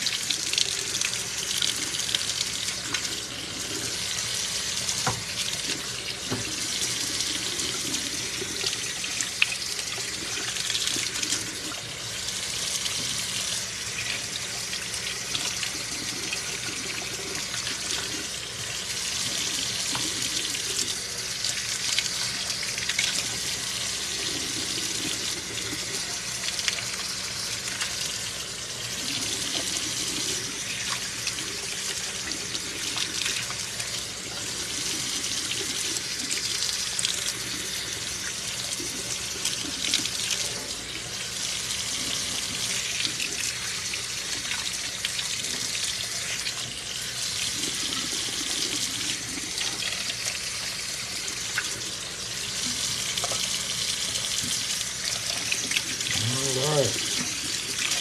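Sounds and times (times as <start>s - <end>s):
faucet running into sink: 0.0s - 58.0s.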